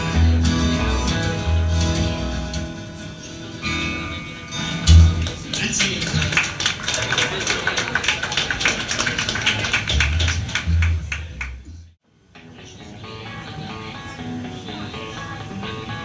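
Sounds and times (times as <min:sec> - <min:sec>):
upright double bass notes: 0:00.0 - 0:03.0, 0:04.8 - 0:05.4, 0:09.9 - 0:11.9
rockabilly band playing: 0:00.0 - 0:06.9, 0:08.6 - 0:11.7.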